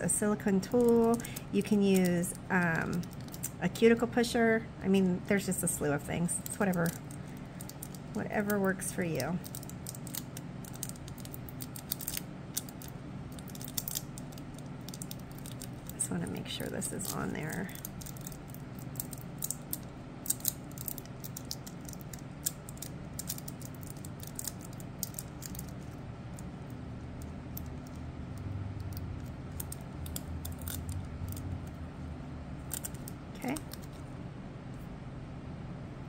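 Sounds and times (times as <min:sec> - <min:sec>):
nails and foil clicking and crackling: 0:00.0 - 0:03.7, 0:05.4 - 0:31.7, 0:32.6 - 0:34.0.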